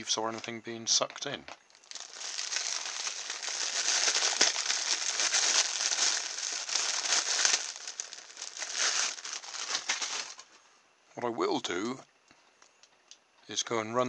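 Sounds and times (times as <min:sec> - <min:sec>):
plastic packaging crinkling: 0:01.7 - 0:10.5.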